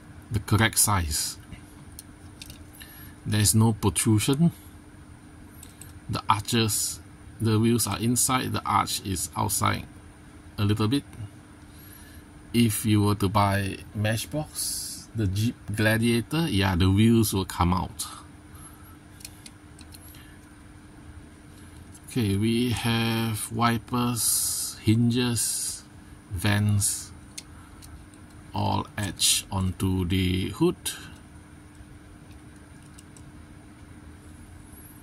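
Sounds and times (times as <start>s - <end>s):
faint constant tone: 0.0s - 35.0s
room hum: 0.0s - 35.0s.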